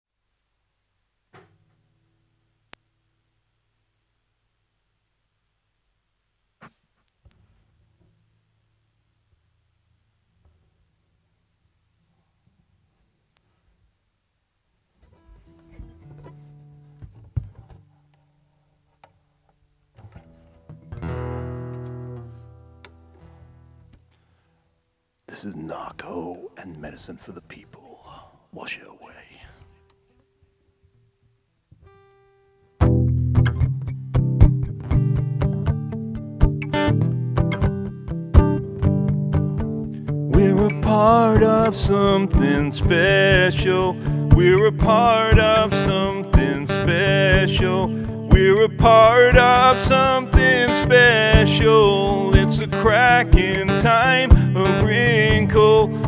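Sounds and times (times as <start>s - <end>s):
knocks against guitar body: 1.3s - 1.7s
acoustic guitar strumming: 15.1s - 18.1s, 19.9s - 24.4s, 31.8s - 56.0s.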